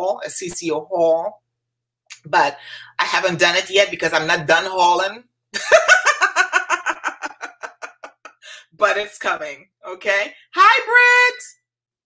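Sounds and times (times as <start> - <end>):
woman giggling: 5.6 - 8.6.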